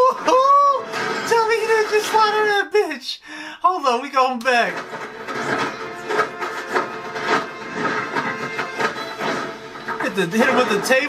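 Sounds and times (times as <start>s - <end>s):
film score music: 4.6s - 11.0s.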